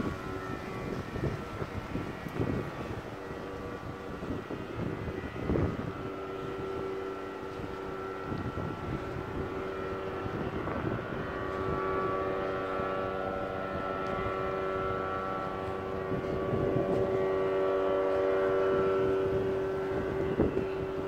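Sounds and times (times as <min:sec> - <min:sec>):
engine drone: 0:00.0 - 0:21.0.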